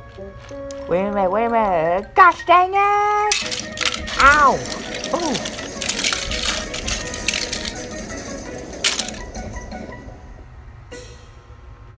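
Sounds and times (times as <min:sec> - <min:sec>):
faint music: 0:00.0 - 0:11.9
toy cars clacking together: 0:03.3 - 0:09.4.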